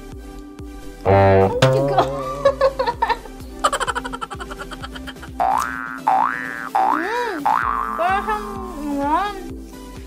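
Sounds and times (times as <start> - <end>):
background music: 0.0 - 10.0
cartoon boing sound effect: 0.8 - 3.1, 5.4 - 8.3.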